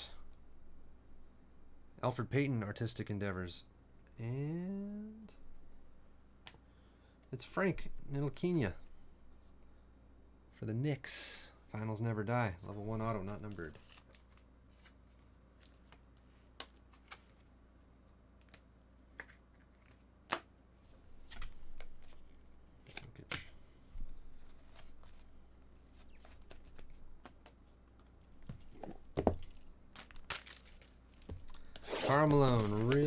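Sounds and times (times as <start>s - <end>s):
wrappers rustling and tearing: 28.6s - 33.0s.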